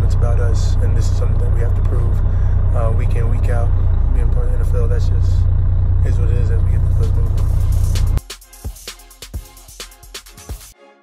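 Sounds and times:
voices: 0.0 - 7.9
bus cabin drone: 0.0 - 8.2
music with sharp percussive hits: 7.4 - 10.8.

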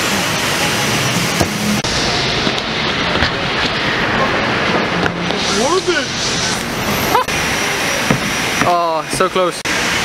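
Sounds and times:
busy city street noise: 0.0 - 10.0.

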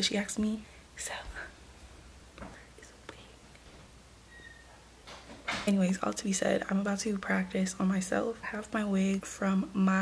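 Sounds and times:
woman whispering: 0.1 - 1.6, 2.4 - 3.5.

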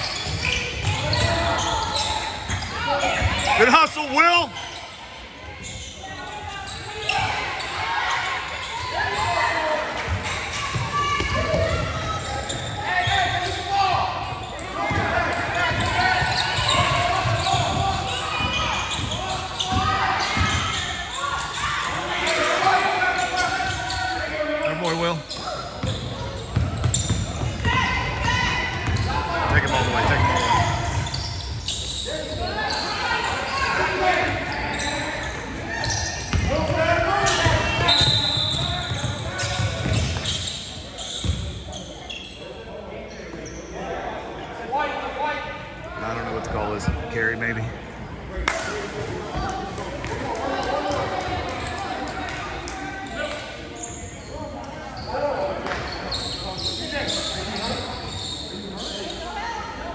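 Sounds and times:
voices in a gymnasium: 0.0 - 59.9.

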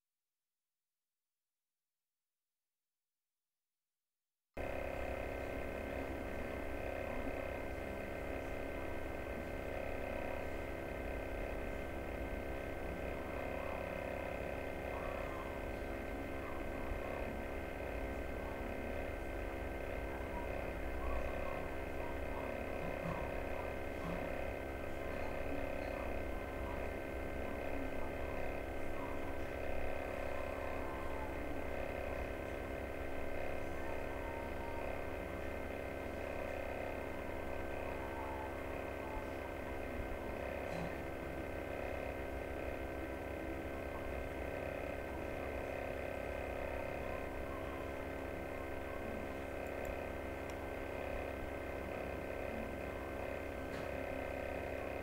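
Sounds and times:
steady hum with held tones: 4.6 - 55.0.

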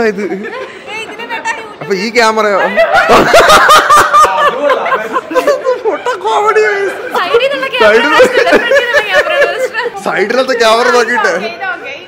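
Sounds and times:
women laughing loudly: 2.6 - 6.5, 7.1 - 10.0.

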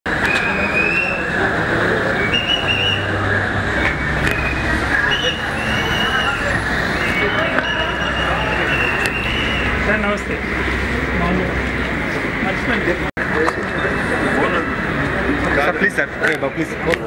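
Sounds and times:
voices calling out: 0.1 - 15.6
crowd babble: 0.1 - 17.0
short high whistle-like tones: 0.2 - 10.0.

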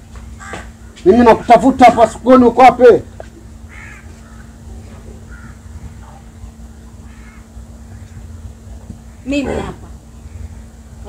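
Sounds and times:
steady low hum: 0.0 - 11.0
faint bird calls: 3.1 - 11.0.

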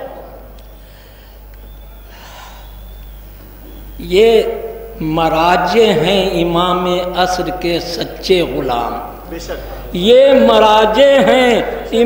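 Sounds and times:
steady low hum: 0.0 - 12.0
man breathing into microphone: 2.1 - 2.7.

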